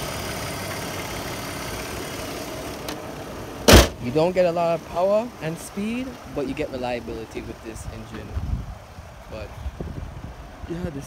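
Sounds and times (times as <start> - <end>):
car engine idling: 0.0 - 8.3
car hood shutting thump: 3.7 - 4.0.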